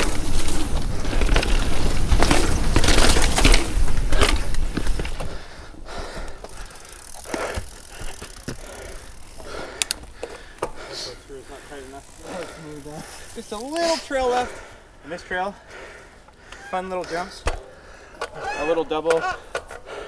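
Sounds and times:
bike tyres rumbling on dirt: 0.0 - 14.8
wind: 0.0 - 20.0.

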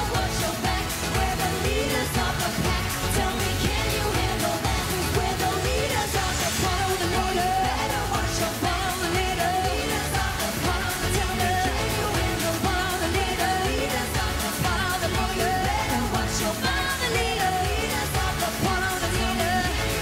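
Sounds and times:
dance beat: 0.0 - 20.0
woman singing: 0.0 - 20.0.

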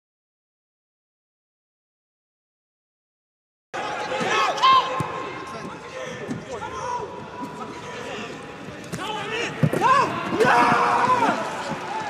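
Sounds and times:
footballers shouting calls: 3.8 - 12.0.

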